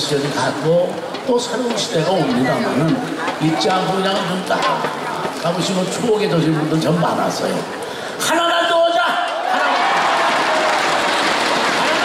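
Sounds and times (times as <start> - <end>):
audience applauding: 9.4 - 12.0.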